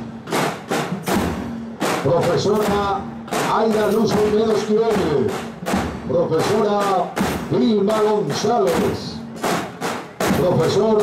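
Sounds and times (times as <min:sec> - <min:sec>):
snare drums beating: 0:00.0 - 0:11.0.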